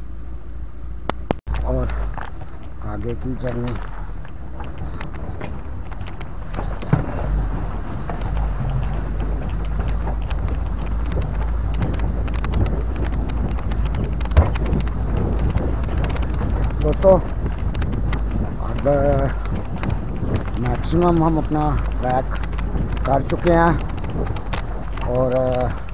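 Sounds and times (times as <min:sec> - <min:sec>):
wind and running gear rumble: 0:00.0 - 0:25.9
stones knocking under wheels: 0:01.1 - 0:25.9.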